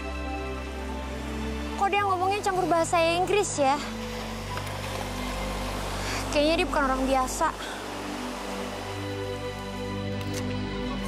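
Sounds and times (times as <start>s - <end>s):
small waves breaking on sand: 3.4s - 9.9s.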